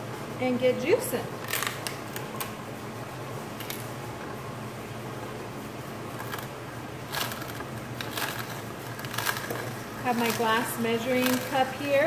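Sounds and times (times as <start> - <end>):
juicer motor humming: 0.0 - 12.0
knocks and crackles of celery: 1.4 - 2.5, 6.1 - 12.0.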